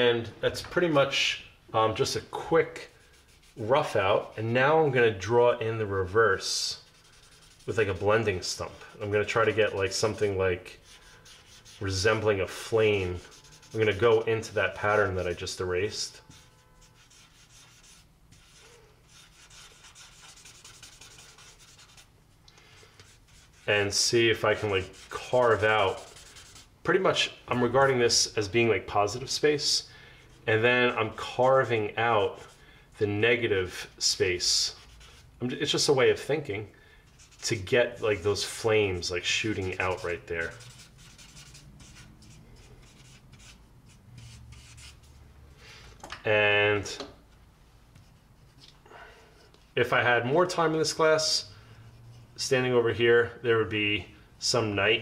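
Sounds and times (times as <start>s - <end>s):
blending stump rubbing on paper: 6.0s - 22.1s, 23.0s - 26.7s, 34.5s - 35.9s, 37.1s - 45.2s.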